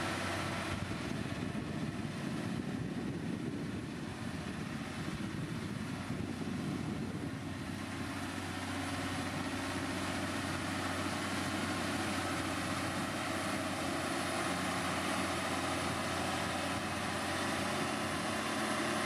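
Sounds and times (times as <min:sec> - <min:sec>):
diesel engine running under load: 0:00.0 - 0:19.0.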